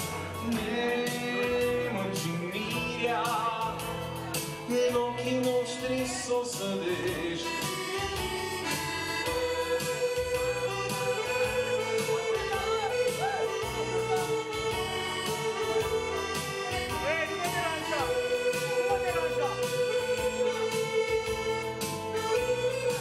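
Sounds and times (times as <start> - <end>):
keyboard backing: 0.0 - 23.0
reedy lead melody: 0.0 - 23.0
steady drum beat: 0.0 - 23.0.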